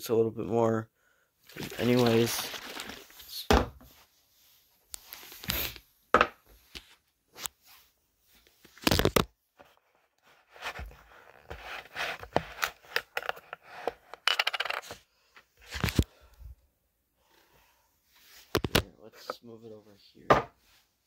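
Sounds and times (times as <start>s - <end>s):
mug set down on table: 20.3s - 20.5s
knocks and scrapes on wooden table: 20.3s - 20.6s.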